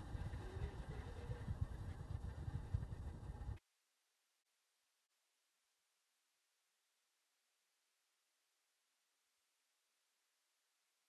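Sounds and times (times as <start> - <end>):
faint steady hiss: 0.0 - 3.8.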